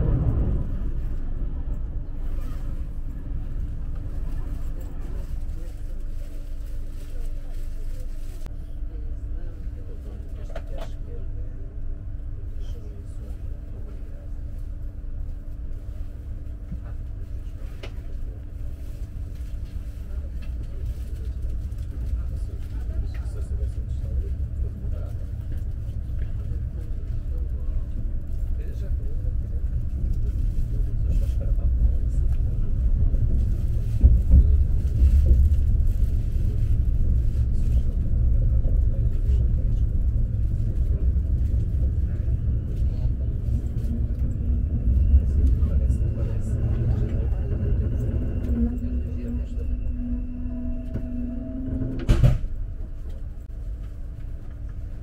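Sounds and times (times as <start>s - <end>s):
train wheels rumbling on track: 0.0s - 55.0s.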